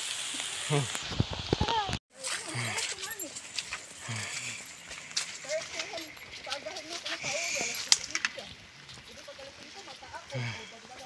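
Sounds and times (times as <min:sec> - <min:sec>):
footsteps on dirt trail: 0:01.0 - 0:11.0.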